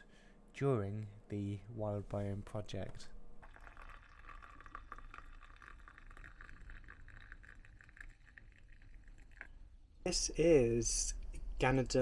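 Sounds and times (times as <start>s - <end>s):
tea trickling into a glass: 3.4s - 9.6s.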